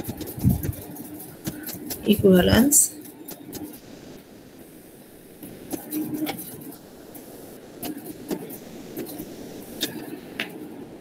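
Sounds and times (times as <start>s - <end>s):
pen tapping and scratching on screen: 0.0s - 2.3s
faint steady hiss: 0.0s - 11.0s.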